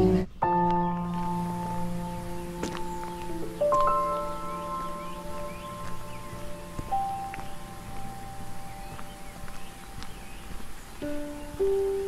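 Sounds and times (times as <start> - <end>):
calm bell-like music: 2.9 - 9.4.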